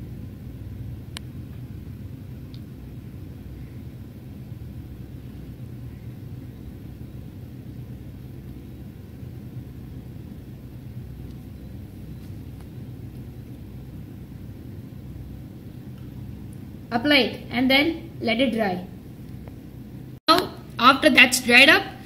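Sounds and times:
low background rumble: 0:00.0 - 0:22.0.

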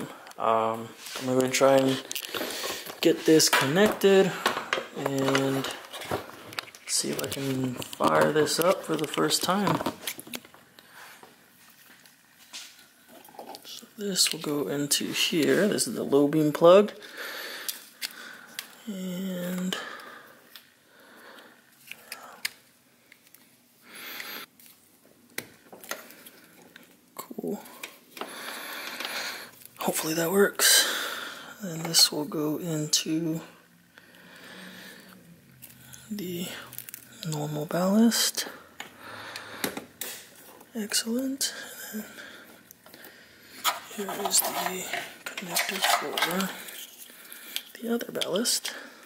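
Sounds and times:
wire rustling: 0:00.8 - 0:14.5, 0:31.7 - 0:48.6.

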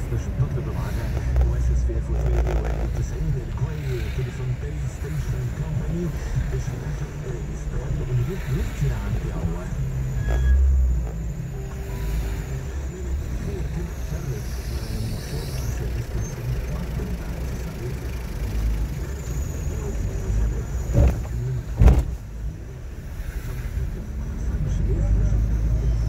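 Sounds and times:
car engine and road rumble: 0:00.0 - 0:26.0
low thump: 0:20.9 - 0:22.2.

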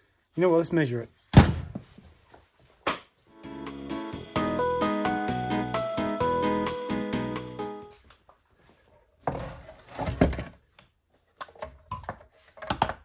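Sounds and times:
background music: 0:03.3 - 0:08.0.

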